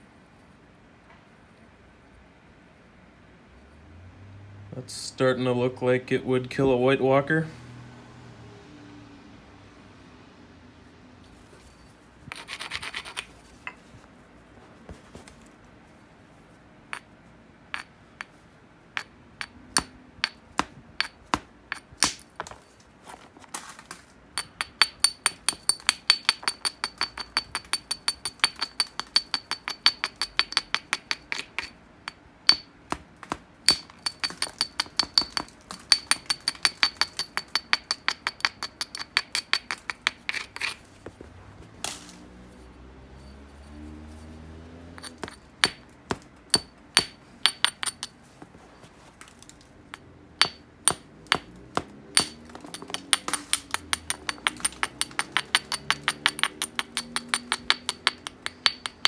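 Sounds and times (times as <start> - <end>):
stone grinding glassy clicks: 12.3 - 13.8, 17.8 - 18.4, 21.0 - 41.0, 45.0 - 48.2, 50.4 - 59.0.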